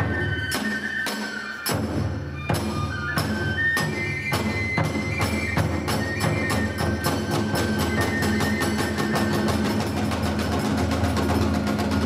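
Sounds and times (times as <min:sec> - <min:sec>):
drums and hand cymbals: 0:00.0 - 0:12.0.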